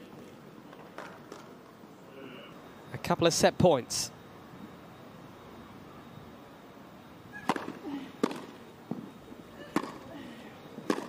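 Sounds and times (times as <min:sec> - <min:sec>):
tennis ball struck by rackets: 0:07.4 - 0:09.0, 0:09.7 - 0:10.0.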